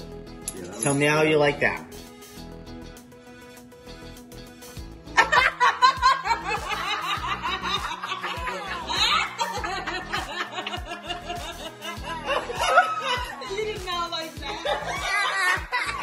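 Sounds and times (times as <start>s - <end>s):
background music: 0.0s - 16.0s
people laughing and snickering: 5.1s - 16.0s.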